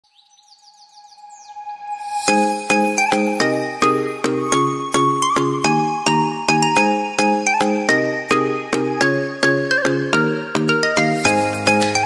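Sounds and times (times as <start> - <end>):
held synth tone: 1.7 - 4.7.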